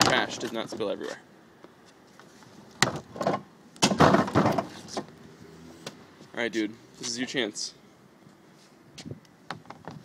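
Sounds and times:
trash can knocks: 2.8 - 4.7.

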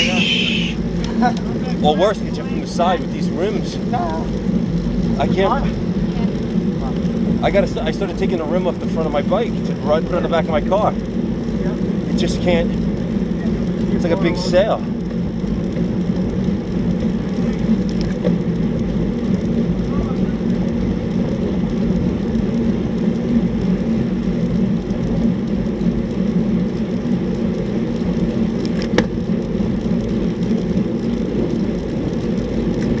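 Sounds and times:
road noise: 0.0 - 33.0
wind buffeting microphone: 0.0 - 33.0.

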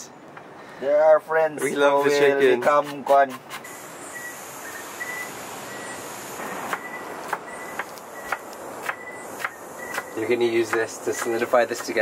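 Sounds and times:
steady hiss: 3.6 - 11.8
knife chopping on wooden board: 6.7 - 12.0.

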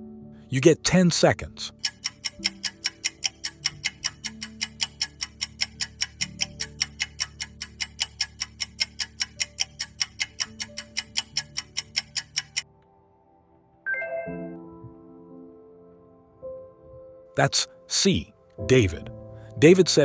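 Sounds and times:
soft background music: 0.0 - 20.0
countdown timer ticking: 1.2 - 12.7.

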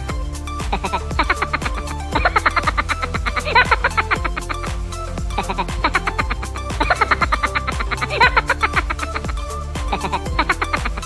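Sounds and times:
bass notes sliding downward: 0.0 - 11.0.

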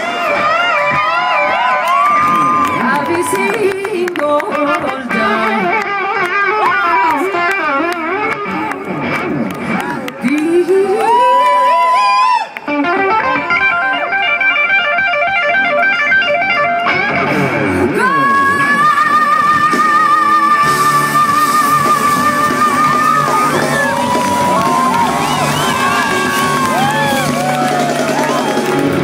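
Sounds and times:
live band playing: 0.0 - 11.4, 12.6 - 29.0
electric guitar solo: 0.0 - 29.0.

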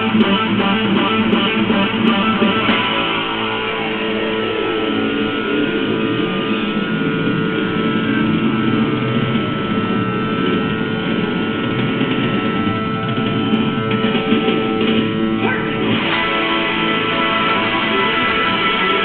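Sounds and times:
electric guitar playing hard rock: 0.0 - 19.0.

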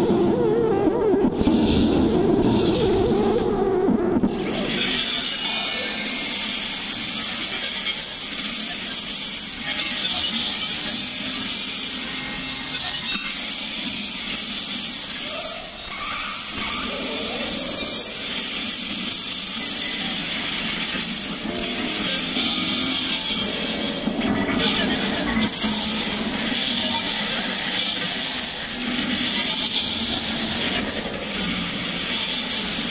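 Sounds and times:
gliding synth tones: 0.0 - 6.1
noisy synth texture: 0.0 - 32.9.

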